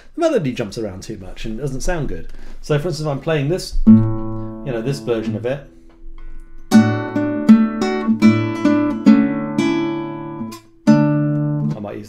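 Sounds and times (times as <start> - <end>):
classical guitar chords and notes: 3.7 - 12.0.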